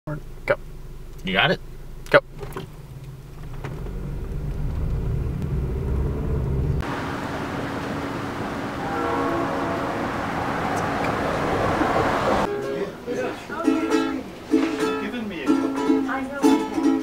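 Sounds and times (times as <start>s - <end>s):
passing traffic: 0.5s - 15.1s
car road noise from inside: 2.3s - 12.5s.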